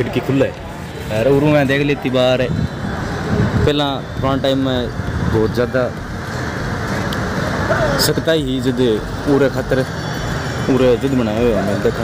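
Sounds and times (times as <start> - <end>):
busy street traffic: 0.0 - 12.0.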